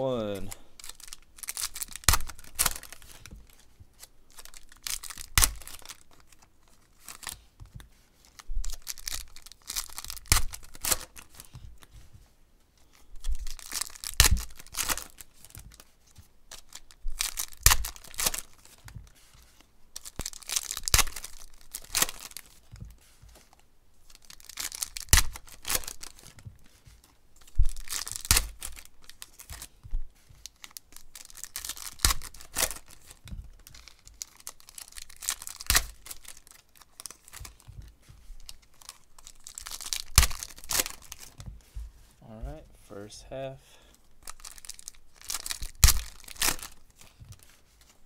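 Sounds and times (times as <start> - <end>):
foil packs tearing and crinkling: 0.0 - 7.4, 8.2 - 11.5, 13.0 - 15.9, 16.5 - 19.2, 20.0 - 22.7, 24.1 - 26.4, 27.0 - 29.8, 30.4 - 37.7, 38.4 - 41.4, 44.2 - 48.0.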